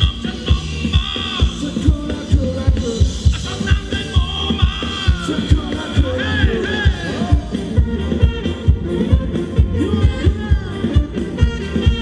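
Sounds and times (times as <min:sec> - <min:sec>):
live dance band music: 0:00.0 - 0:12.0.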